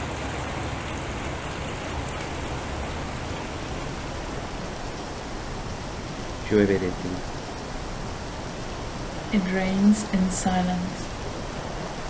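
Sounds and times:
electronic rain-like hiss: 0.0 - 12.0.

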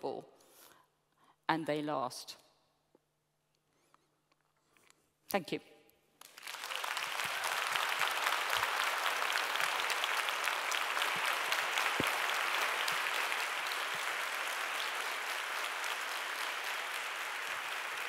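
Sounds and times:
large audience applauding: 6.2 - 18.0.

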